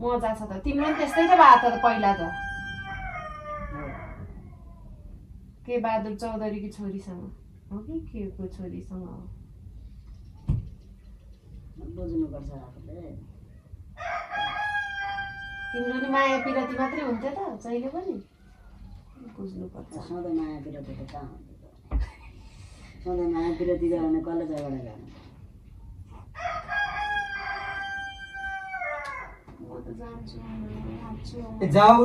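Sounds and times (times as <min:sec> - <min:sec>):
rooster crowing: 0:00.7 - 0:05.0, 0:14.0 - 0:18.9, 0:26.3 - 0:29.5.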